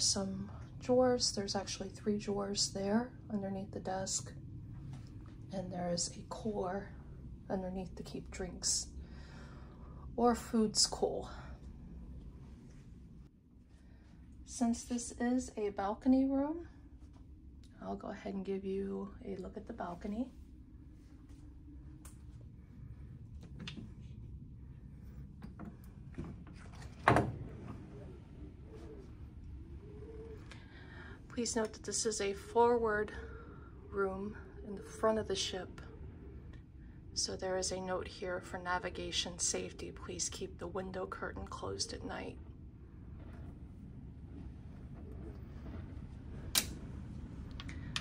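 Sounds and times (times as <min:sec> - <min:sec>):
low cabin hum: 0:00.0 - 0:48.0
steady low rumble: 0:00.0 - 0:48.0
sliding glass door opening: 0:25.6 - 0:29.3, 0:42.6 - 0:48.0.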